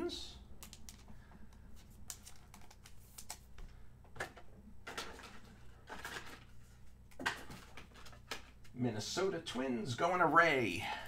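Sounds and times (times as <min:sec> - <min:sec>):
cards clicking and sliding: 0:00.6 - 0:06.5.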